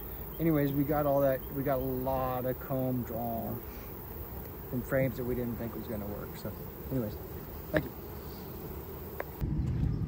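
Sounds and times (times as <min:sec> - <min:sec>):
honey bees buzzing: 0:00.0 - 0:09.4.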